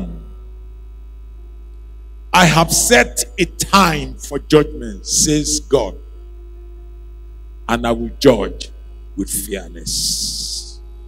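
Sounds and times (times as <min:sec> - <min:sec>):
low mains hum: 0:00.0 - 0:11.0.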